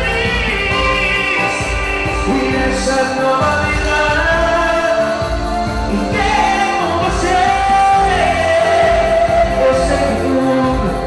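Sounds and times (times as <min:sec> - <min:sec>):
live band music: 0:00.0 - 0:11.0
man singing into microphone: 0:00.0 - 0:11.0.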